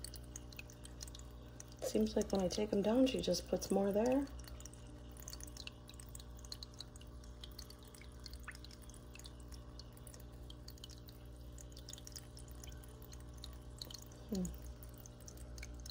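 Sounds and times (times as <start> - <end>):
steady low hum: 0.0 - 15.9
water dripping and trickling: 0.0 - 15.9.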